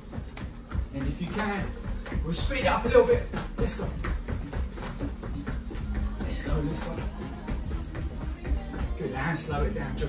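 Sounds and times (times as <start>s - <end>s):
footfalls on padded mat: 0.0s - 9.3s
electronic music: 0.0s - 10.0s.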